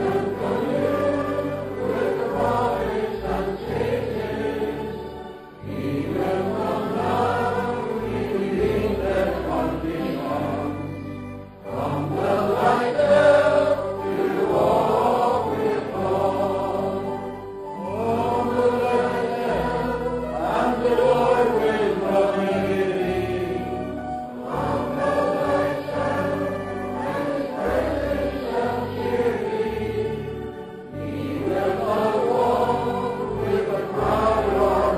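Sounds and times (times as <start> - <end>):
group singing a hymn: 0.0 - 34.9.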